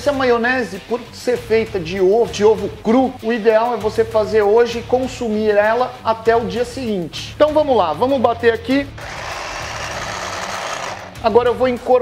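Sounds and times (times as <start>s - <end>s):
food chopper blade whirring: 8.9s - 11.2s.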